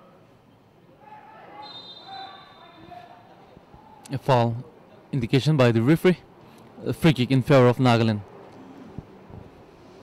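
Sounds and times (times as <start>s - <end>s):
distant shouts: 0.9s - 4.1s
referee's whistle: 1.6s - 3.0s.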